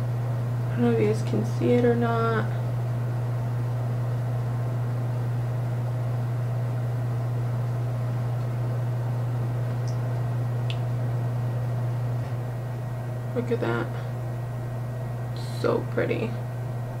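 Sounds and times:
low hum with light hiss: 0.0s - 17.0s.

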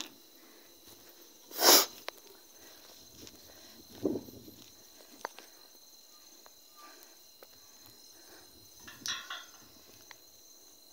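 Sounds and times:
insects trilling: 0.0s - 10.9s.

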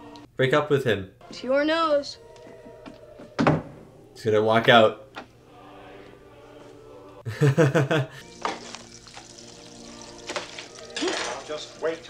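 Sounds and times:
food sizzling in frying pans: 8.2s - 12.0s.

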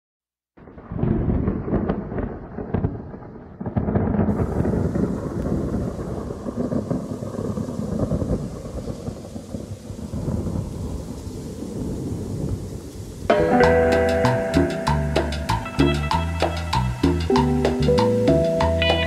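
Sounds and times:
rolling thunder: 0.6s - 19.0s
heavy rain hissing: 4.3s - 19.0s.

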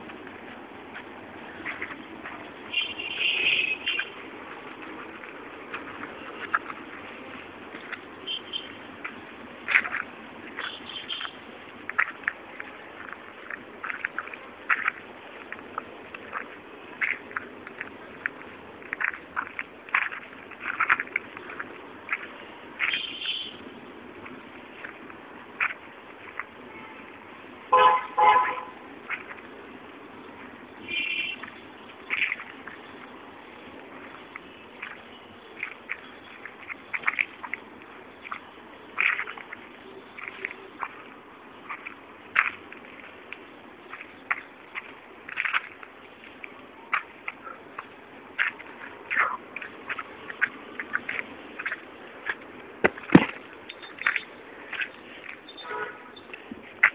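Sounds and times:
distant traffic hum: 0.0s - 56.9s
vehicle horn tooting: 2.7s - 4.1s, 26.7s - 27.1s, 27.7s - 28.8s, 30.8s - 31.4s, 55.6s - 56.3s.

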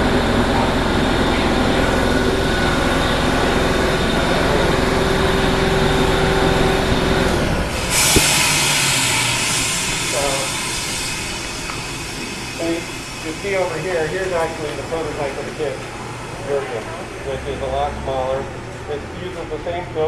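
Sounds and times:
factory machinery rumbling: 0.0s - 20.0s
steady high hiss: 7.9s - 15.8s.

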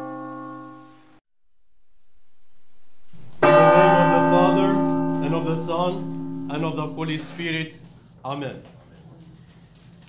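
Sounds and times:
bell ringing with overtones: 3.2s - 7.9s.

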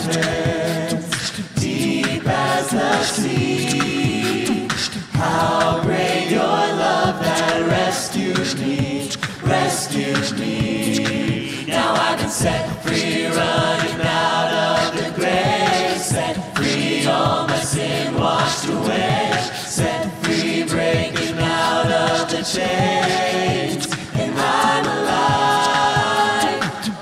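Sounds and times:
a cappella group singing: 0.0s - 27.0s.

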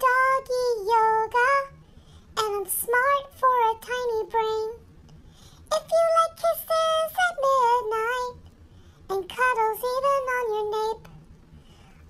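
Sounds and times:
high-pitched voice singing: 0.0s - 1.8s, 2.4s - 4.8s, 5.7s - 8.4s, 9.1s - 11.1s.

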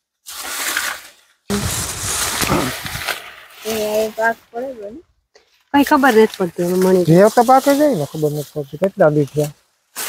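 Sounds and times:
dry leaves crackling and rustling: 0.2s - 10.0s.

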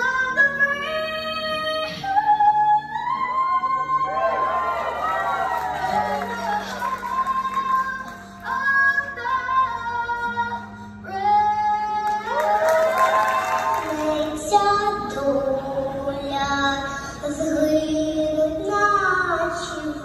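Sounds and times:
girl singing into a microphone: 0.0s - 4.1s, 5.9s - 20.0s.

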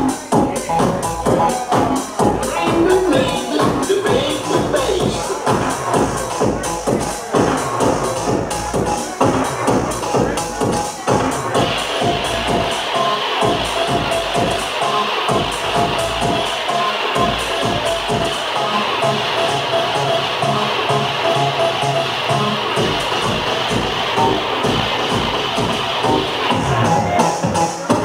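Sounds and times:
house music over sound system: 0.0s - 28.0s.

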